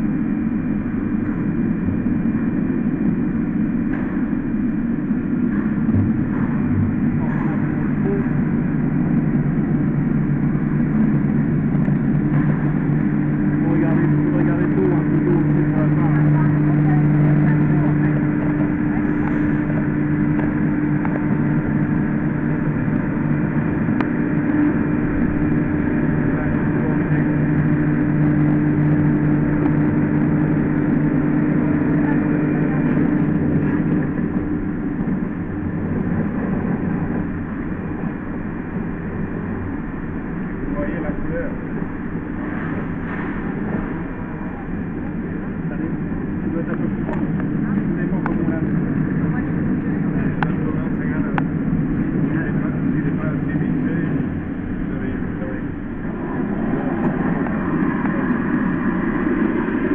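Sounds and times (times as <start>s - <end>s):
machine motor drone: 0.0s - 59.9s.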